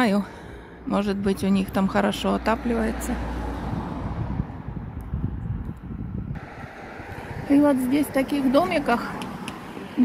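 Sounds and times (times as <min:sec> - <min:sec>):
wind buffeting microphone: 0:01.0 - 0:10.0.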